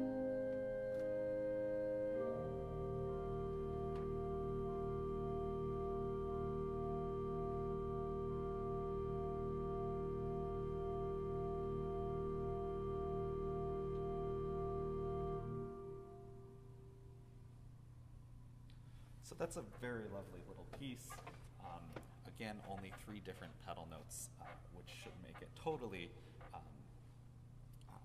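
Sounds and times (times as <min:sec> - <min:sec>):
pipe organ playing: 0:00.0 - 0:17.0.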